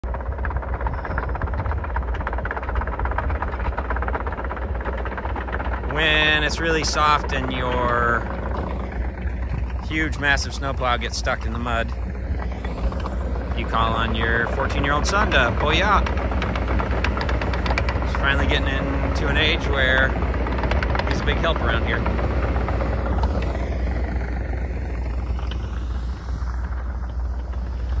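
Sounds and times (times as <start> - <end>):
diesel engine rumbling: 0.0 - 28.0
tracks clattering: 0.0 - 28.0.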